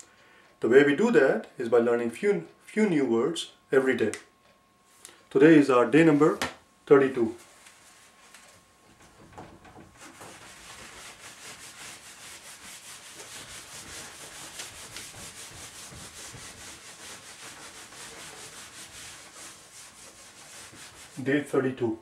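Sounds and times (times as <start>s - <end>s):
eraser scrubbing whiteboard: 10.0s - 21.5s.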